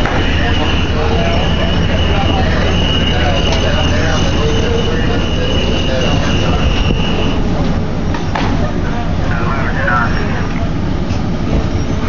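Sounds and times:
high-pitched whine: 0.0 - 8.1
faint voices: 0.0 - 12.0
fire engine rumble: 0.0 - 12.0.

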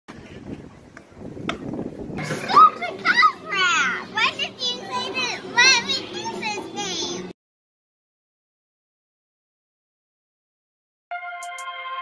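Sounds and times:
children shouting and squealing: 2.2 - 7.3.

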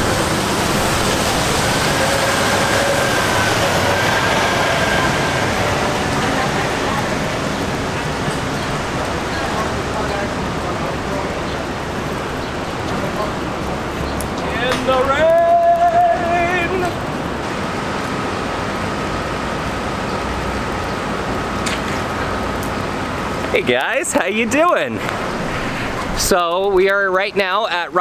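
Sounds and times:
rain hiss: 0.0 - 28.0
traffic on wet street: 0.0 - 28.0.

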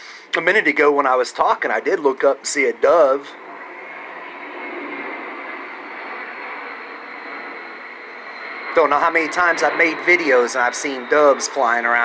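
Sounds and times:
airplane passing overhead: 0.0 - 12.0.

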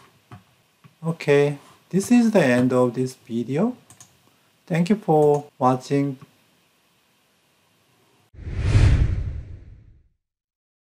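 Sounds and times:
whoosh with low rumble: 8.4 - 10.0.

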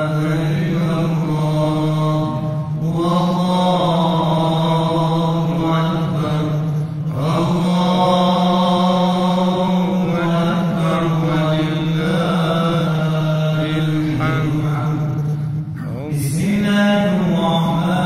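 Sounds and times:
man chanting melodically: 0.0 - 18.0
steady low tone: 0.0 - 18.0.

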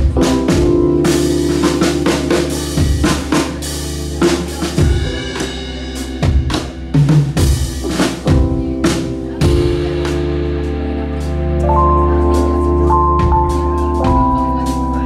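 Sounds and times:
drum kit playing: 0.0 - 15.0
keyboard chords: 0.0 - 15.0.

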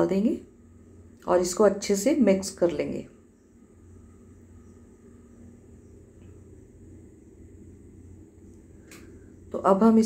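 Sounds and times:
low hum: 0.0 - 10.0
light hiss: 3.2 - 9.7.

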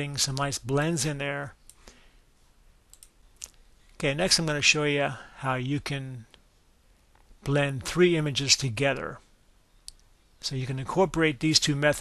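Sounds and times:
computer mouse clicks: 2.9 - 3.6.

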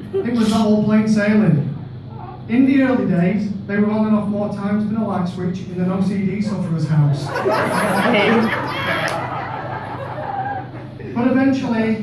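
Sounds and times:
audience laughing: 7.2 - 11.1.

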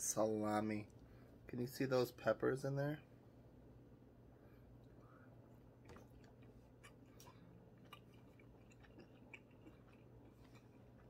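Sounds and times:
chewing mouth clicks: 5.8 - 11.0.

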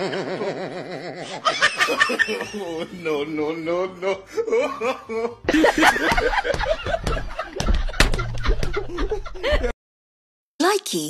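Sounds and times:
man laughing hysterically: 0.0 - 9.8
sharp knocks: 5.5 - 9.2.

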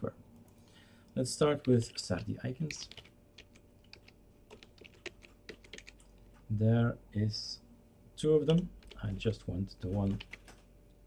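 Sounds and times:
keyboard typing: 2.7 - 6.4, 8.5 - 9.2, 9.8 - 10.7.

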